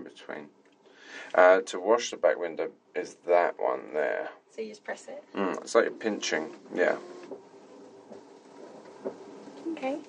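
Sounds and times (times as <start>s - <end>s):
washer pump and wiper motor whir: 6.0s - 9.6s.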